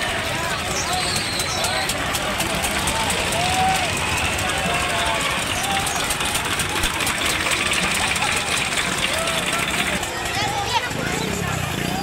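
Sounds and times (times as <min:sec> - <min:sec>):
chatter of voices: 0:00.0 - 0:12.0.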